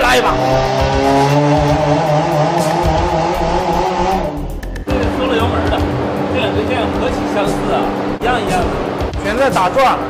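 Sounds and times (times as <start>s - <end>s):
car engine at high revs: 0.0s - 9.2s.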